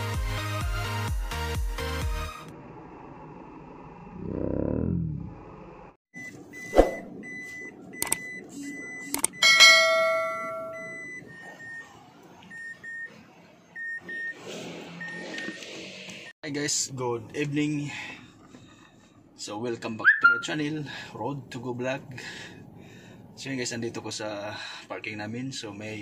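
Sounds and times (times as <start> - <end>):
short high beep: 6.6 - 11.2
notification bell ding: 9.4 - 11.1.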